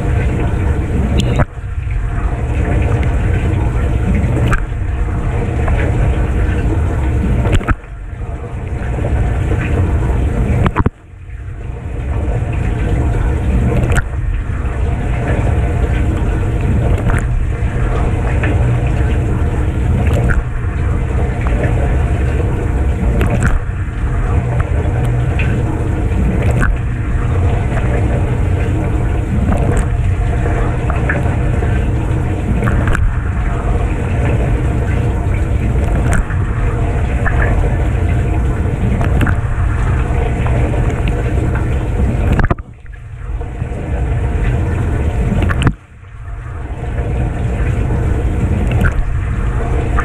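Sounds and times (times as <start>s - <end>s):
dishwasher pump humming: 0.0s - 50.0s
water droplets ticking: 0.0s - 50.0s.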